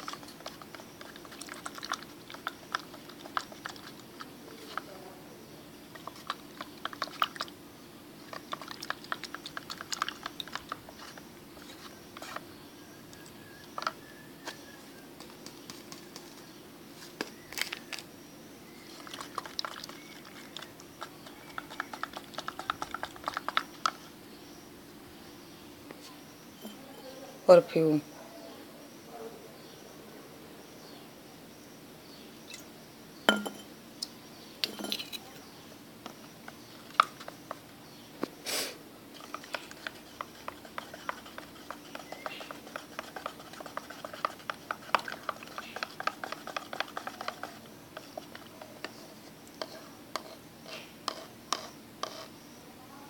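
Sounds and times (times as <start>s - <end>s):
stick clicking against plastic jug: 19.0s - 24.0s, 39.2s - 50.3s
glass bottle clinking: 33.3s - 33.7s, 34.6s - 35.2s.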